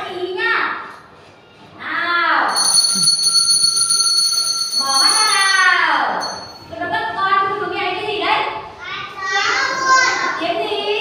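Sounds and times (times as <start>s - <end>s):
small bell ringing: 2.5s - 6.7s
voices: 4.8s - 11.0s.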